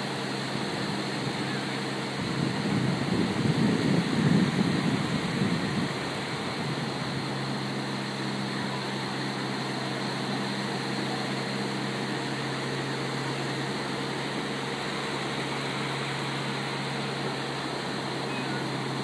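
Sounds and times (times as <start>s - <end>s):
low motor drone: 0.0s - 19.0s
surf washing on beach: 0.0s - 19.0s.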